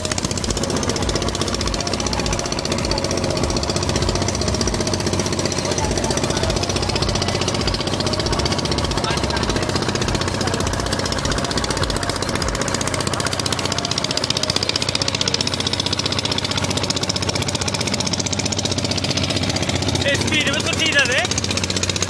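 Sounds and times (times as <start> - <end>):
motorboat engine chugging: 0.0 - 22.0.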